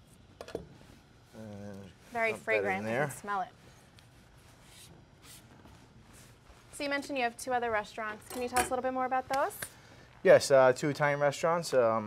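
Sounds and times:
man humming: 0:01.3 - 0:01.9.

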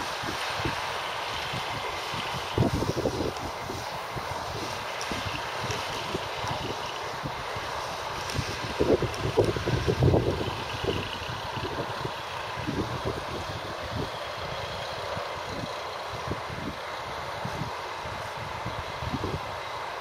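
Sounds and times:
tractor and baler humming: 0:00.0 - 0:20.0
wind buffeting microphone: 0:00.0 - 0:20.0.

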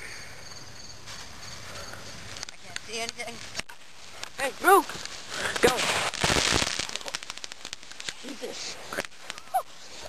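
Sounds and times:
firework crackles: 0:01.0 - 0:10.0
firework mortar burst: 0:03.4 - 0:10.0.

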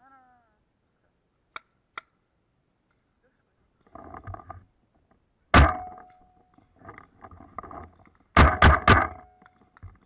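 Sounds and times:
paintball marker shots: 0:05.5 - 0:06.2, 0:08.3 - 0:09.4.

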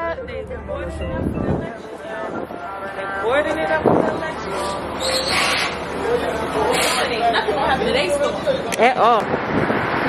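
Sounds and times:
indistinct voices talking: 0:00.0 - 0:09.4
city street noise: 0:00.0 - 0:10.0.

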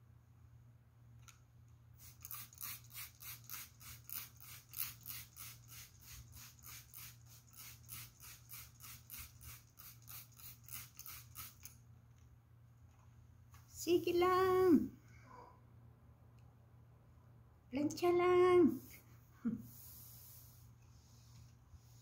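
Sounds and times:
spray bottle hissing sprays: 0:02.0 - 0:11.8.

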